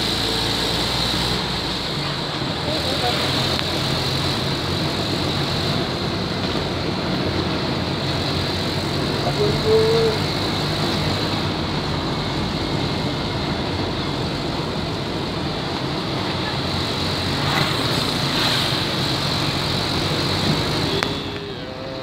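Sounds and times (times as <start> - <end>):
motorcycle engine hum: 0.0 - 22.0
wind and road noise: 0.0 - 22.0.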